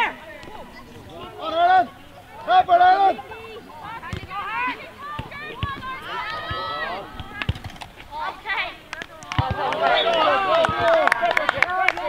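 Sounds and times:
voices shouting: 0:00.0 - 0:12.0.

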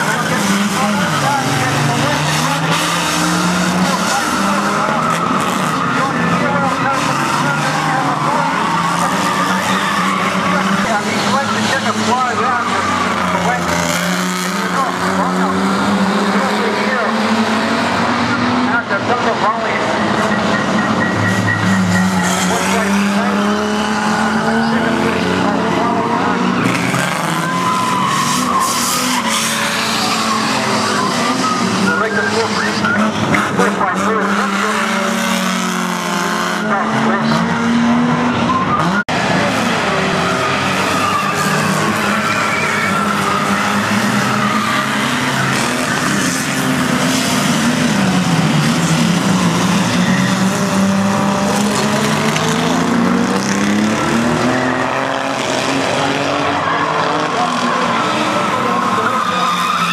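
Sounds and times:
racing car engines revving: 0:00.0 - 0:59.9
tyres skidding and squealing: 0:00.0 - 0:59.9.

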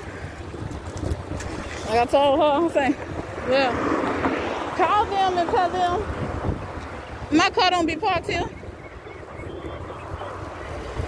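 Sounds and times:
low wind rumble on microphone: 0:00.0 - 0:11.0.

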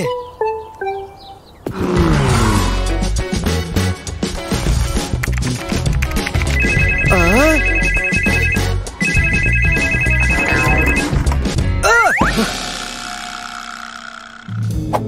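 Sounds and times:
background music: 0:00.0 - 0:12.9
desk telephone ringing: 0:06.6 - 0:11.2.

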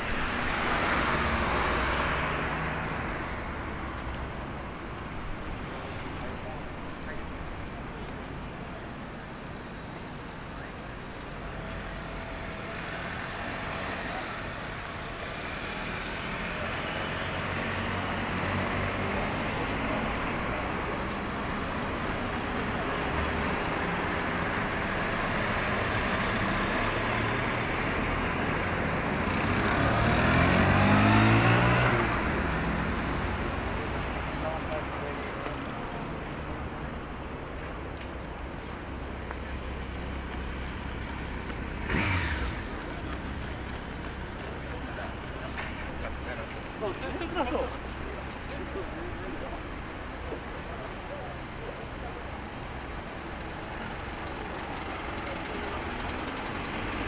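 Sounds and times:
road traffic: 0:00.0 - 0:57.0
vehicle passing close by: 0:25.9 - 0:35.1, 0:40.9 - 0:47.6.

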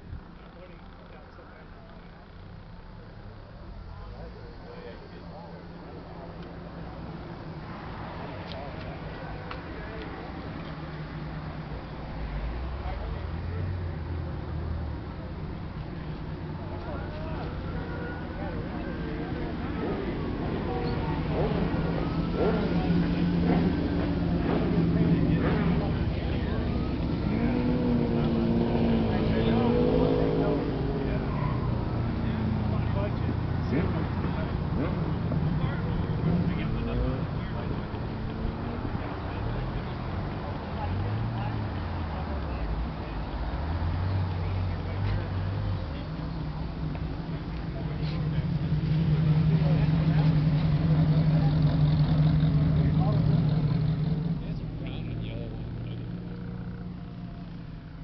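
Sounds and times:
car engine idling: 0:00.0 - 0:58.0
indistinct voices: 0:00.0 - 0:58.0.

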